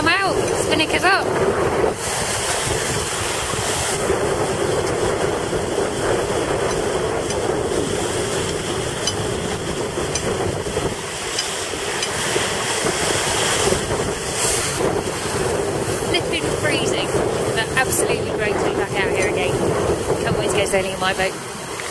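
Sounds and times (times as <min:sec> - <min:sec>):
water rushing along hull: 0:00.0 - 0:21.9
wind buffeting microphone: 0:00.0 - 0:21.9.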